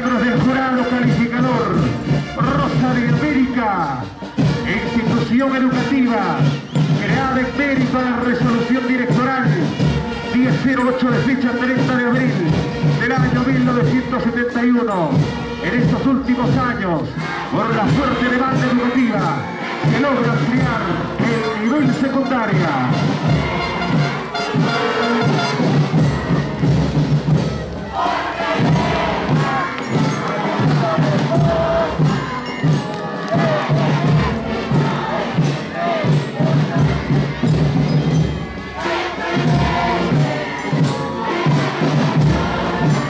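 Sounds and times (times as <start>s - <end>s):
crowd cheering and shouting: 0.0s - 43.0s
parade band with brass and drums: 0.0s - 43.0s.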